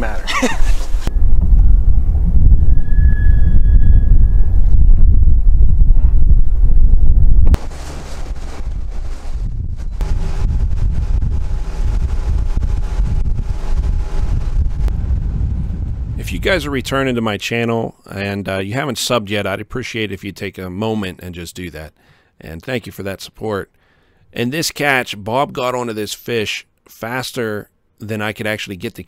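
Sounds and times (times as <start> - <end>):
wind rumble on microphone: 0.2 - 17.2
outboard motor hum: 7.6 - 16.1.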